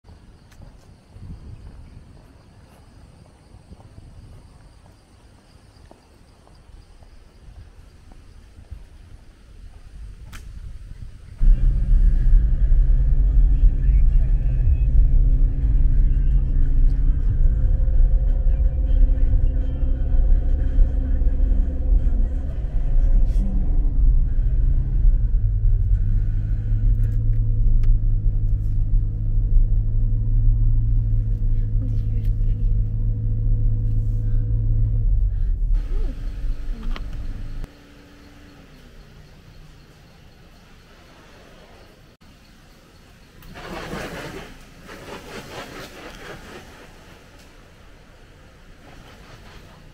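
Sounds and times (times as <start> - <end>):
vehicle engine rumble: 0.0 - 49.9.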